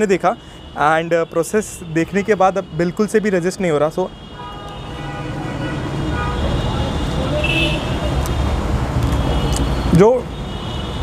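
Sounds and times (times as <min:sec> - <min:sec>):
traffic engine rumble: 0:00.0 - 0:11.0.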